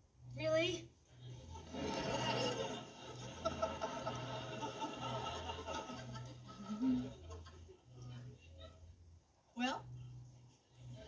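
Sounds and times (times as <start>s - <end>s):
studio audience laughing on tv: 1.4s - 8.9s.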